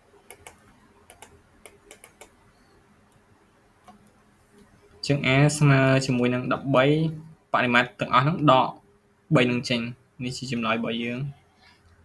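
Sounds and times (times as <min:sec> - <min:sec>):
mouse and keyboard clicks: 0:00.2 - 0:02.4.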